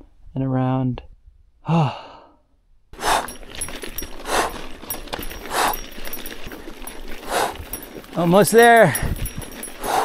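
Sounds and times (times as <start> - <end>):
cyclist breathing hard: 1.7 - 10.0
tyres crunching on gravel: 3.0 - 10.0.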